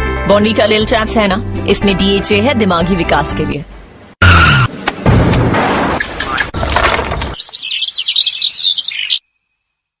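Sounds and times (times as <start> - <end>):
bird chirps and twitters: 7.2 - 9.4.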